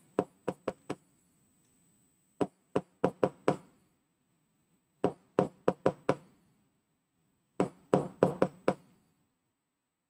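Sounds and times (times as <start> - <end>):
pen tapping on display screen: 0.2 - 1.0, 2.4 - 3.6.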